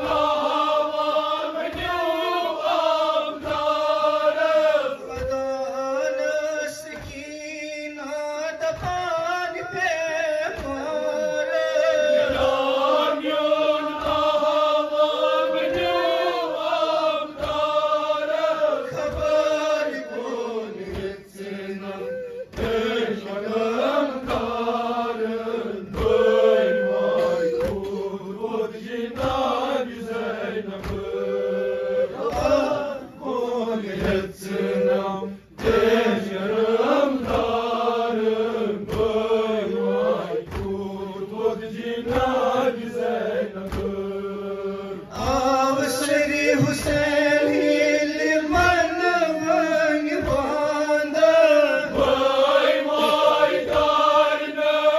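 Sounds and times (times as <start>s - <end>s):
man reciting into a microphone: 0.0s - 54.9s
men chanting a lament: 0.0s - 54.9s
rhythmic chest-beating slaps: 0.0s - 54.9s.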